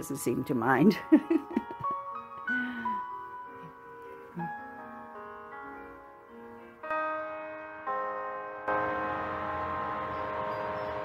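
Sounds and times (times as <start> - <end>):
held musical chord ringing: 2.5 - 11.0.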